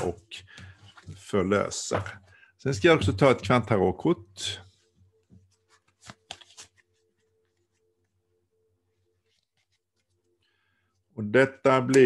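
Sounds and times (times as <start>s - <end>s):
card paper rustling: 5.4s - 7.8s, 9.1s - 10.2s.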